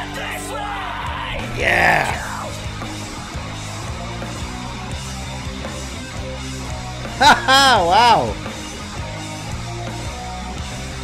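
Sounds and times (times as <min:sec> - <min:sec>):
wavering vocal yell: 0:01.1 - 0:02.6, 0:07.2 - 0:08.4.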